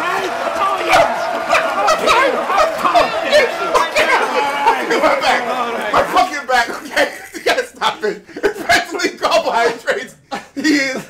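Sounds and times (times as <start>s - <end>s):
men laughing hard: 0.3s - 9.0s.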